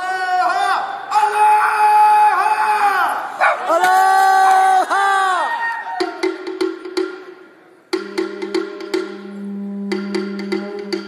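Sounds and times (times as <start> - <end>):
percussion strikes: 6.0 - 11.0.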